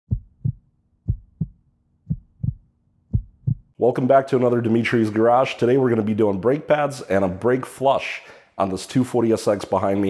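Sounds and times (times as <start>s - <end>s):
heartbeat thumps: 0.1s - 3.8s
man speaking: 3.8s - 10.0s.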